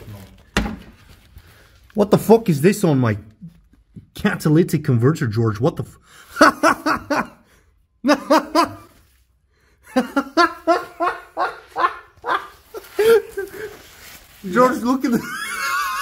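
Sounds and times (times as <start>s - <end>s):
people laughing hard: 6.3s - 9.0s, 9.8s - 14.0s, 14.6s - 16.0s.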